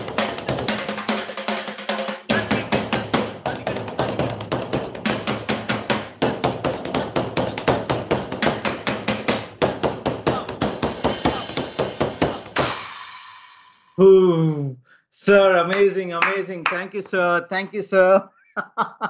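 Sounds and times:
fast stick drumming: 0.0s - 12.8s.

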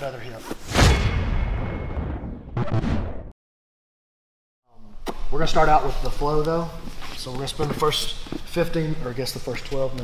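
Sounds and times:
deep cinematic boom: 0.7s - 3.3s.

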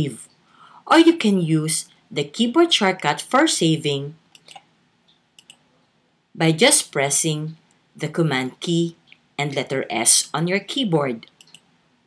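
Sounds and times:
faint short clicks: 4.3s - 5.6s.

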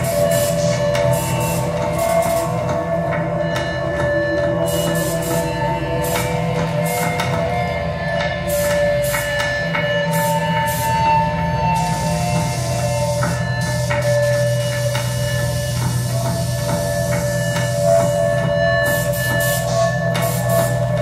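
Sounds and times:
electronic drone music: 0.0s - 21.0s.

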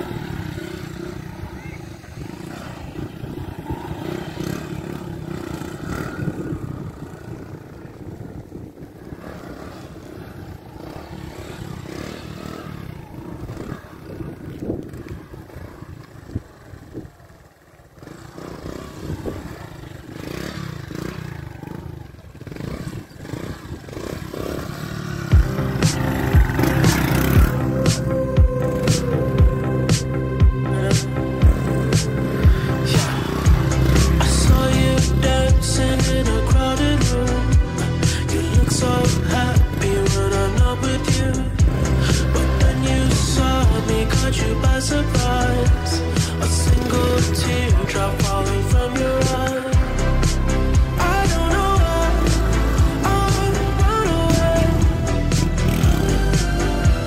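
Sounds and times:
small motorcycle engine revving: 0.0s - 57.0s
music with steady beat: 25.3s - 57.0s.

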